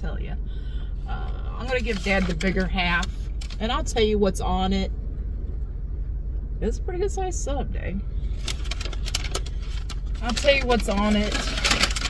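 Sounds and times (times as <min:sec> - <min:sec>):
low rumble: 0:00.0 - 0:12.0
paper wrapping crinkling: 0:01.7 - 0:03.6, 0:08.4 - 0:12.0.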